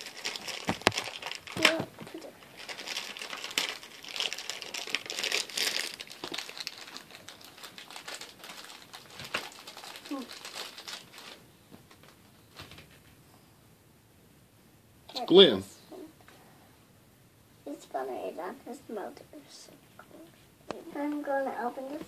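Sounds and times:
foil wrapper crinkling: 0.0s - 12.8s.

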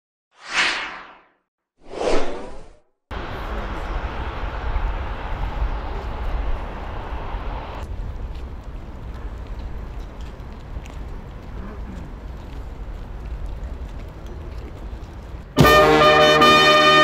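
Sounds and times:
whoosh sound effects: 0.4s - 2.8s
street noise with low rumble: 3.1s - 17.0s.

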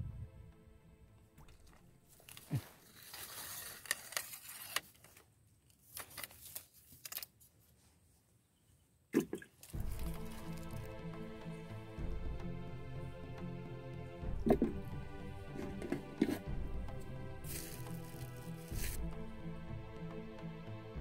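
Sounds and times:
dry grass and leaves crunching: 1.4s - 5.2s, 9.6s - 11.0s, 15.4s - 19.2s.

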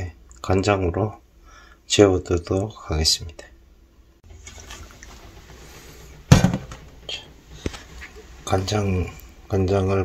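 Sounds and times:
loud knock: 6.3s - 6.8s.

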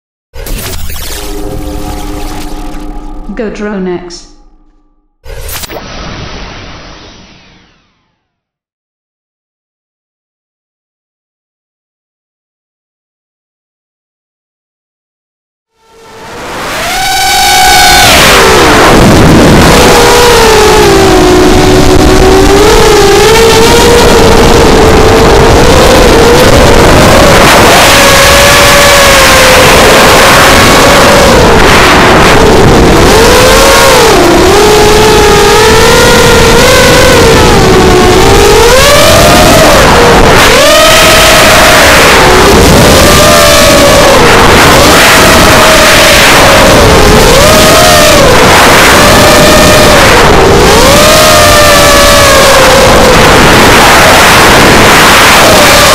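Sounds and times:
quadcopter motors whining: 15.8s - 55.9s.

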